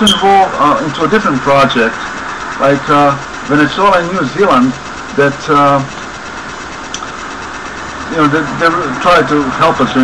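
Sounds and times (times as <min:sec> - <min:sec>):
mechanical background noise: 0:00.0 - 0:10.0.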